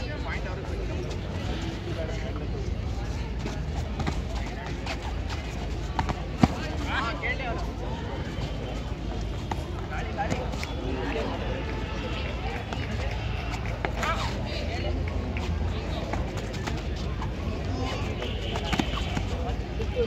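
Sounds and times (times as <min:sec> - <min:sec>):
people calling and chattering: 0:00.0 - 0:20.0.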